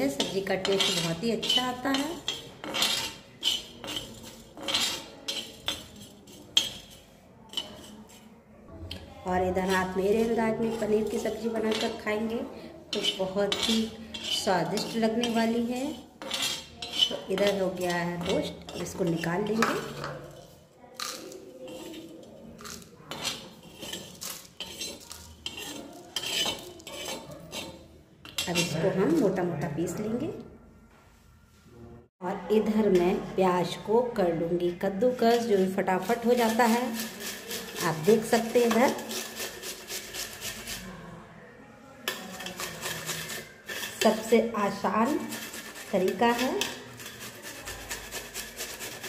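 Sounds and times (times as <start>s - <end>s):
spatula scraping spices on iron pan: 0.0s - 30.2s, 32.6s - 41.1s, 42.0s - 49.0s.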